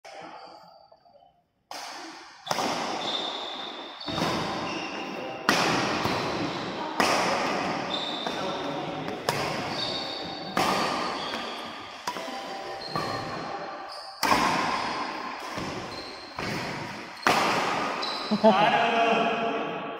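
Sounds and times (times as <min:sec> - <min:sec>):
racket striking shuttlecock: 0:01.7 - 0:08.4, 0:09.1 - 0:13.5, 0:14.2 - 0:18.0.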